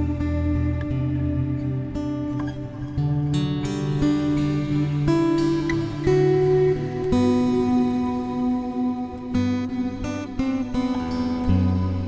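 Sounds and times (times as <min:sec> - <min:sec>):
fingerstyle acoustic guitar: 0:00.0 - 0:12.0.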